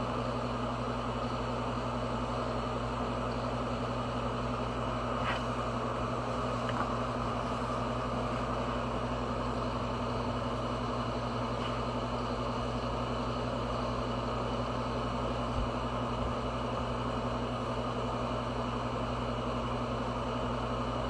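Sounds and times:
mechanical hum with airy whir: 0.0s - 21.0s.

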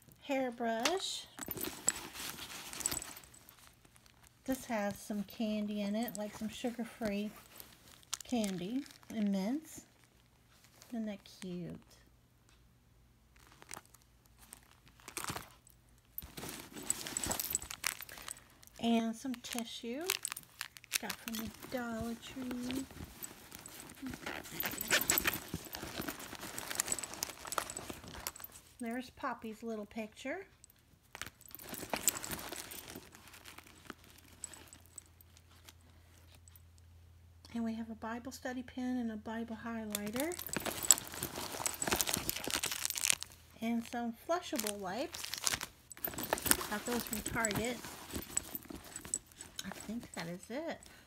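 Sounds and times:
rustling in a handbag: 0.0s - 11.9s, 13.3s - 29.1s, 30.6s - 36.7s, 39.9s - 51.0s
plastic crinkling: 1.3s - 4.7s, 7.3s - 10.9s, 13.3s - 28.7s, 31.1s - 35.8s, 40.0s - 51.0s.

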